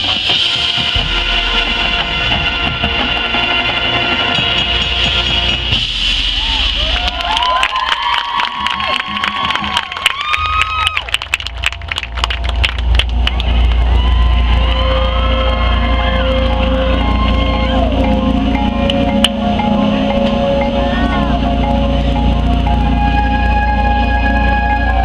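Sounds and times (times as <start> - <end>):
marching band sustained chord: 0.0 - 6.4, 12.6 - 25.0
crowd cheering and shouting: 6.2 - 25.0
scattered clapping: 6.7 - 16.8
low steady bass: 8.5 - 25.0.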